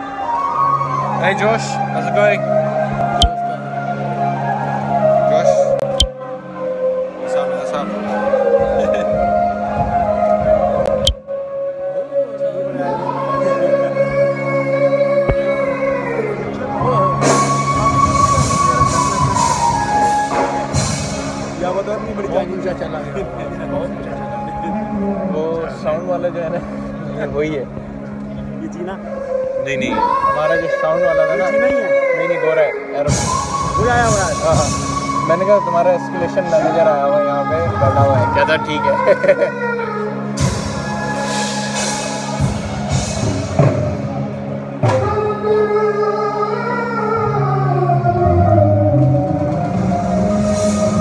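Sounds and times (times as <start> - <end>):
live band music over loudspeakers: 0.0 - 51.0.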